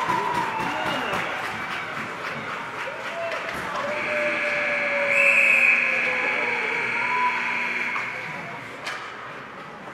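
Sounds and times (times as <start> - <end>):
arena background noise: 0.0 - 9.9
steady high-pitched tone: 4.3 - 8.6.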